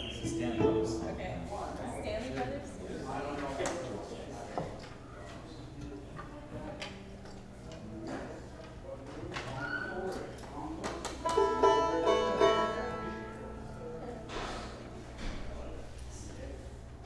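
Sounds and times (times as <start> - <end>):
banjo notes and chord: 0.0 - 1.5, 11.3 - 14.2.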